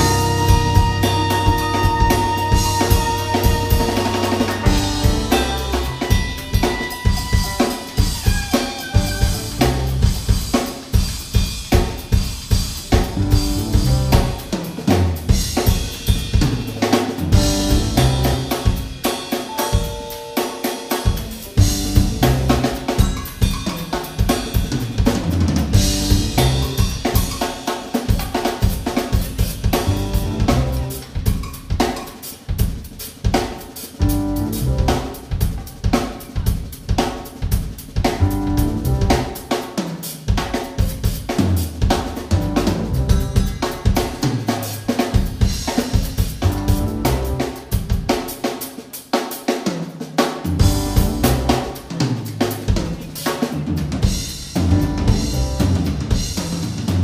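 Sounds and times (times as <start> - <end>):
drum kit: 0.0 - 57.0
live band playing: 0.0 - 57.0.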